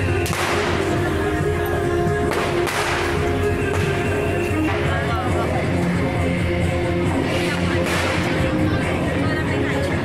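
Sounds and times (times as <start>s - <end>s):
firecrackers crackling: 0.0s - 1.4s, 2.2s - 6.0s, 7.0s - 9.2s
procession music: 0.0s - 4.7s.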